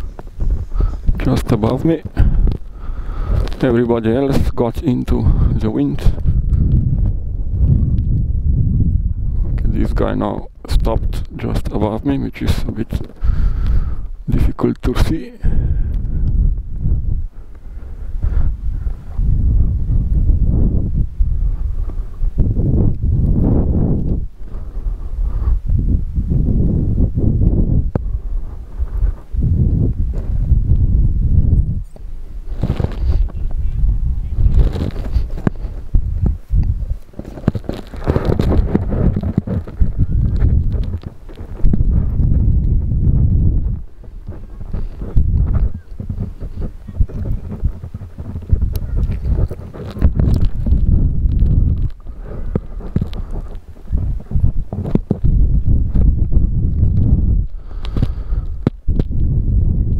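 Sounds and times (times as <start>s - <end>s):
gusty wind buffeting microphone: 0.0s - 59.9s.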